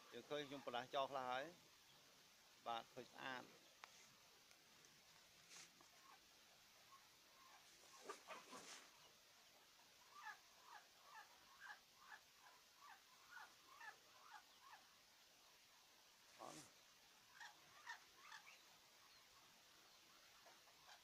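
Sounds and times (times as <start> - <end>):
bird chick chirping: 10.0 - 14.9, 17.3 - 21.0.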